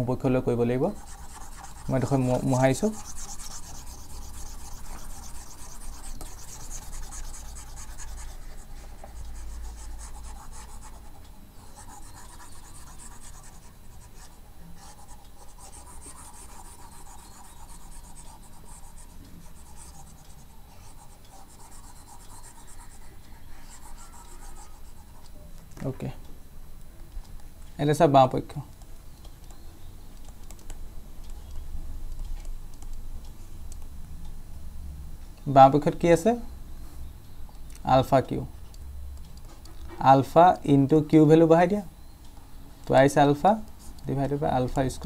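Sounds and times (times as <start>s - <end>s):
stylus scratching on pen tablet: 0.8s - 25.3s.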